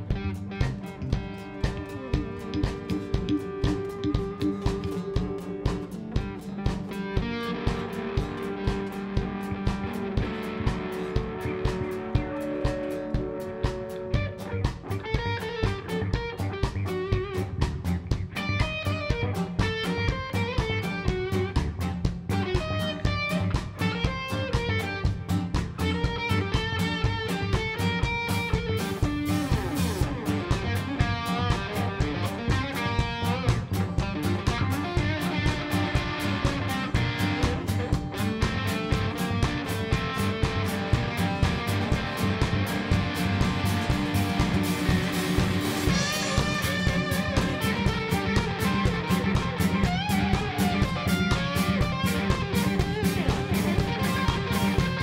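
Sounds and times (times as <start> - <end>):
guitars holding chords: 0.0 - 55.0
kick drum beat: 0.0 - 55.0
live rock band playing: 0.0 - 55.0.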